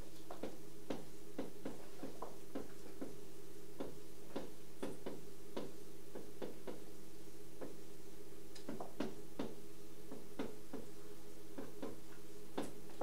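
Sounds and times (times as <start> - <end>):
room equipment hum: 0.0 - 13.0.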